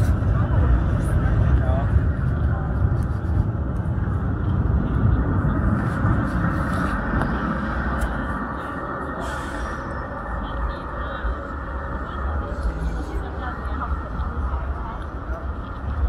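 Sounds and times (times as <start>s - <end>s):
passersby talking: 0.0s - 16.0s
traffic rumble: 0.0s - 16.0s.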